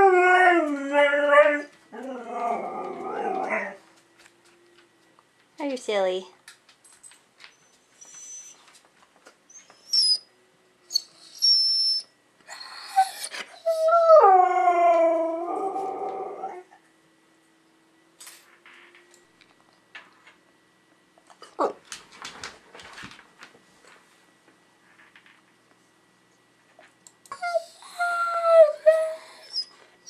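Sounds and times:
dog howling: 0.0 - 3.8, 12.5 - 16.8, 27.3 - 29.6
dog whining: 0.0 - 3.8, 7.5 - 8.7, 9.5 - 10.3, 10.9 - 16.8, 27.3 - 29.8.

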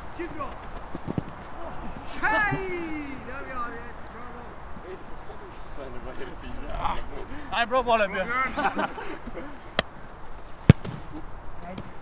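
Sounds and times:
football kick thud: 10.6 - 11.1.

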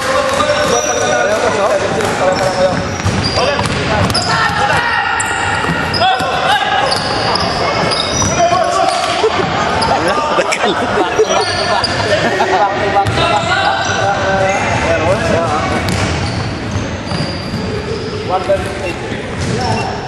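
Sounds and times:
sneakers squeaking: 0.0 - 20.0.

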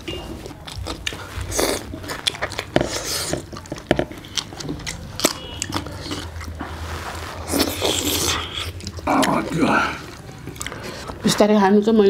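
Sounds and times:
chewing and lip smacks: 0.3 - 6.8, 7.4 - 11.3.

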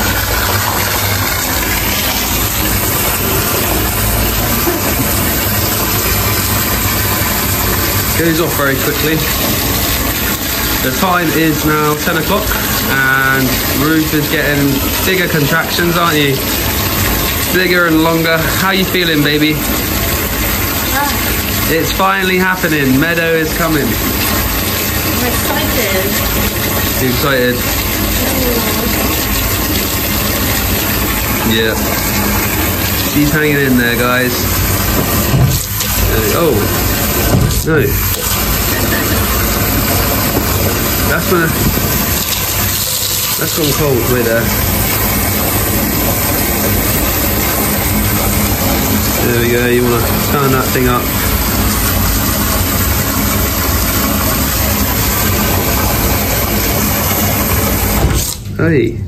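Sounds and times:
water pouring from tap: 0.0 - 58.6.

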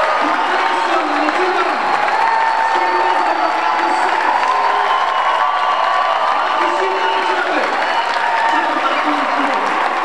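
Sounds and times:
applause: 0.0 - 10.0
crowd cheering: 0.0 - 10.0.

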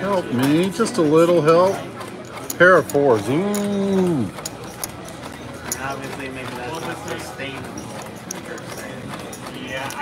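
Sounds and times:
background chatter: 0.0 - 10.0
casino chips clicking: 0.1 - 10.0.

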